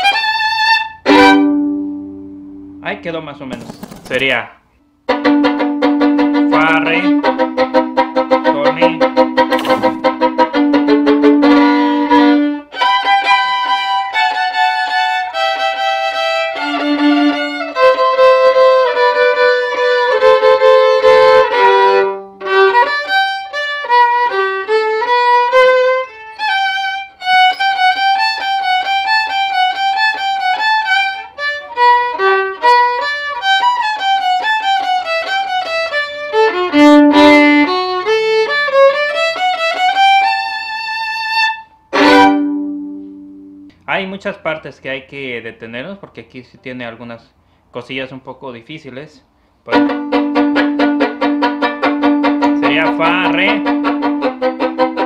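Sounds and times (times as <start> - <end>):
solo violin double stops: 0.0 - 2.2, 5.1 - 43.9, 49.7 - 55.0.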